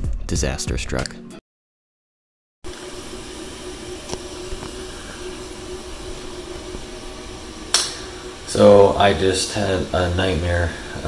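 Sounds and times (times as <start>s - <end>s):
low hum: 2.7s - 11.0s
man speaking: 8.5s - 11.0s.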